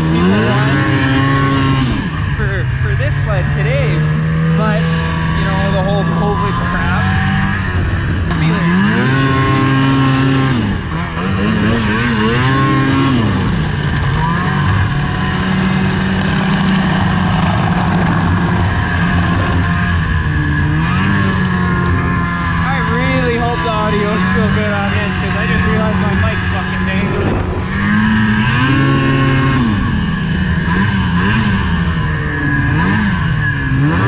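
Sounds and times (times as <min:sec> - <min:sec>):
snowmobile engine revving: 0:00.0 - 0:34.0.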